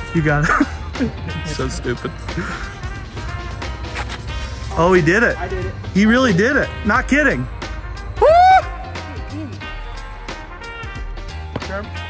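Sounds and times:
background music with bass line: 0:00.0 - 0:12.0
man cheering: 0:08.2 - 0:09.6.

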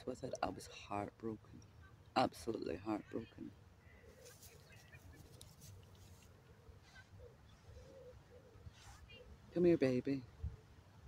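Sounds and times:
soft rustles: 0:04.1 - 0:09.3.

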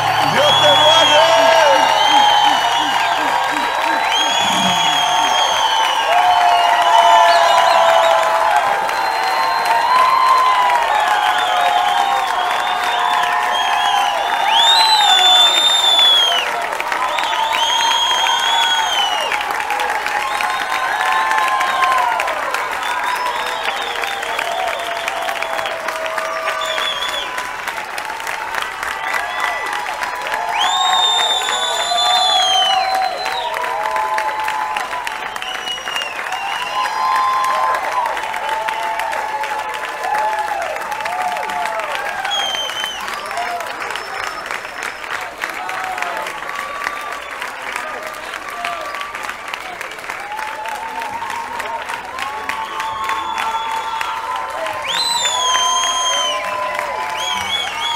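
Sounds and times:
high held call: 0:00.0 - 0:06.8
audience applauding and cheering: 0:00.0 - 0:57.9.

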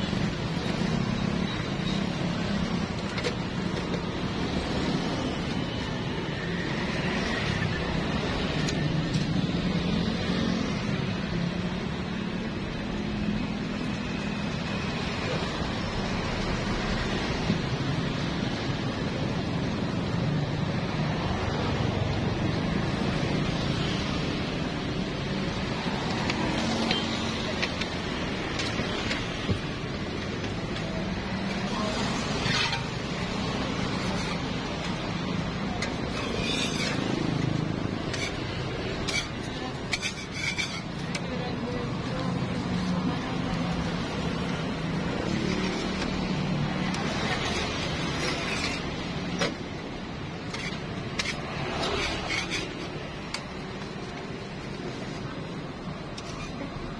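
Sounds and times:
traffic: 0:00.0 - 0:56.9.

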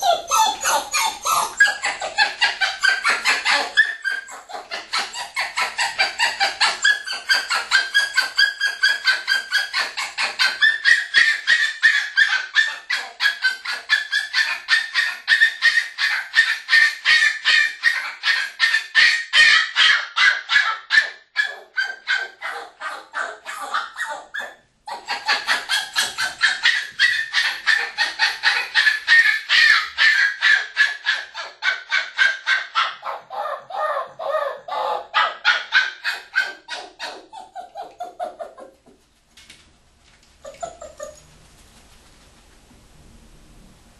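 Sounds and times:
puppy yelping: 0:00.0 - 0:38.9, 0:40.4 - 0:41.2.

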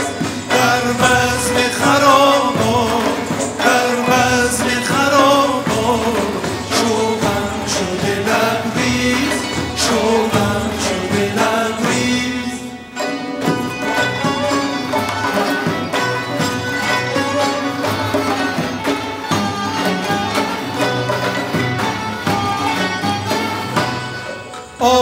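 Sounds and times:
man singing: 0:00.0 - 0:16.3, 0:24.8 - 0:25.0
hand drum rhythm: 0:00.0 - 0:24.8
bowed string instrument: 0:00.0 - 0:25.0
plucked strings: 0:00.0 - 0:25.0.

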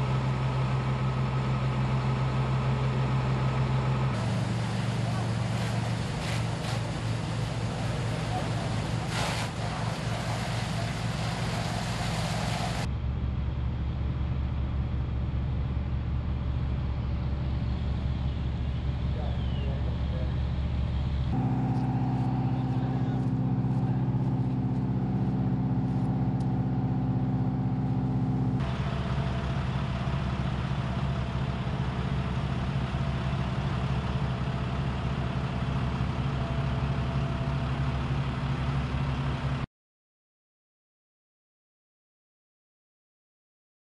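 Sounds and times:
fire engine running: 0:00.0 - 0:39.7.

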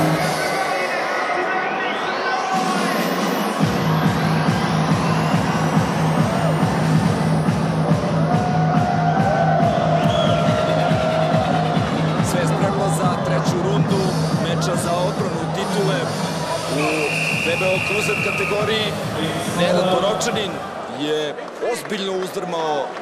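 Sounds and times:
electronic dance music: 0:00.0 - 0:20.8.

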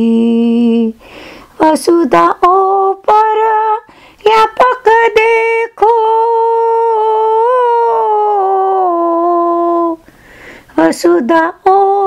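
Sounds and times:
woman singing a long note: 0:01.6 - 0:10.0.

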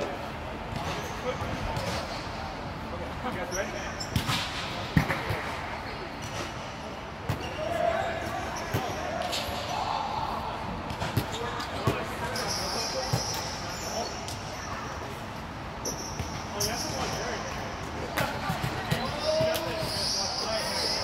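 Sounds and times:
chatter of players' voices: 0:00.0 - 0:21.0
volleyballs bouncing on gym floor: 0:04.1 - 0:05.6, 0:18.1 - 0:19.8.

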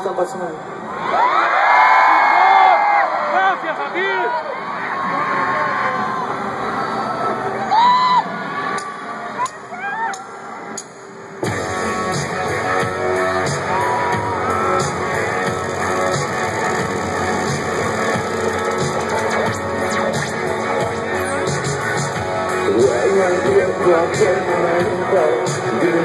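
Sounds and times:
crowd screaming and whistling: 0:04.6 - 0:10.9, 0:12.5 - 0:22.6
live rock band playing: 0:11.4 - 0:26.0
crowd shouting: 0:13.1 - 0:19.3.

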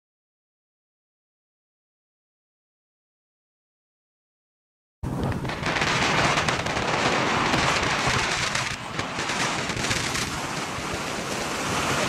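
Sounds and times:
wind rush on microphone: 0:05.0 - 0:12.0.

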